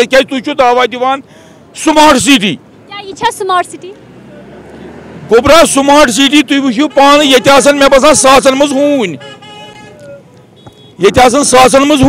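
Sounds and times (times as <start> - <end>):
street traffic: 0.0 - 12.0
car horns sounding: 5.5 - 12.0.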